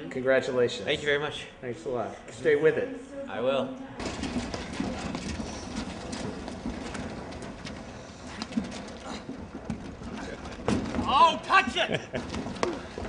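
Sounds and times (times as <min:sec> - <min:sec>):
players' footsteps: 0:04.0 - 0:13.0.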